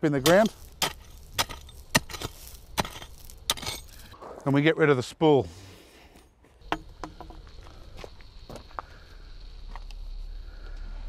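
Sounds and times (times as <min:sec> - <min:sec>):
loose stones clattering: 0:00.0 - 0:04.4
mattock striking gravel: 0:00.0 - 0:08.8.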